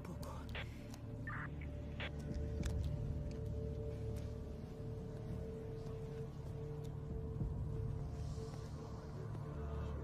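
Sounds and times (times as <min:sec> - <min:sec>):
low dark film score drone: 0:00.0 - 0:10.0.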